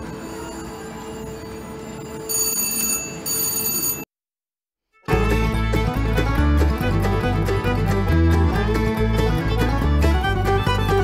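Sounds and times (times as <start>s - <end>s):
slot machine win bell ringing: 0.0s - 4.1s
credit meter counting up: 2.2s - 4.1s.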